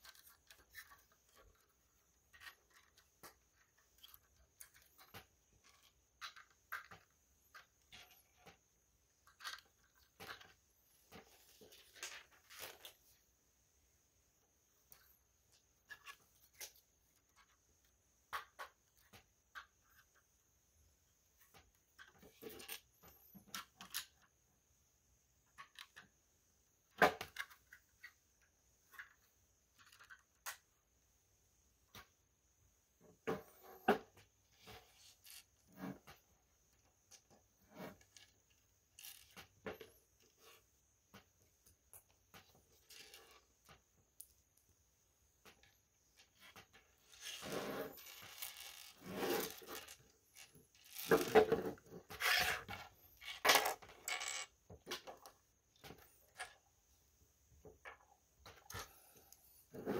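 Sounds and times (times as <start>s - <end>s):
rustling: 45.5s - 54.4s
plastic bricks clicking and clattering: 48.0s - 56.6s.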